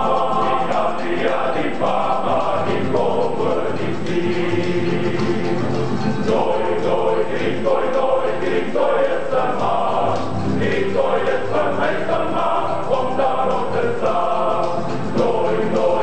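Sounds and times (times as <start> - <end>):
male voice choir singing: 0.0 - 16.0.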